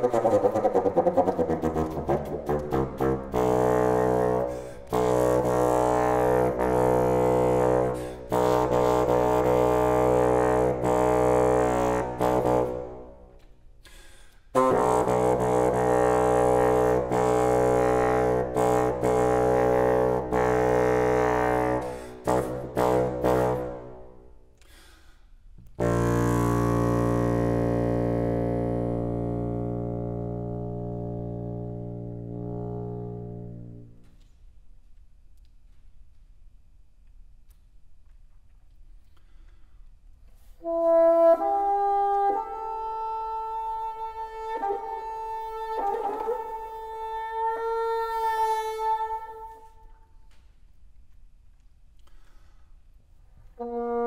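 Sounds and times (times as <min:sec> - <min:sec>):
solo bassoon: 0:00.0 - 0:13.5, 0:14.5 - 0:24.4, 0:25.7 - 0:34.2, 0:40.6 - 0:49.9, 0:53.5 - 0:54.0.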